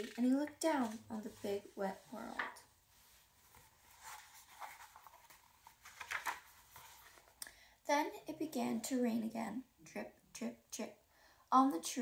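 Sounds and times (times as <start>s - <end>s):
book pages turning: 0.0s - 7.4s.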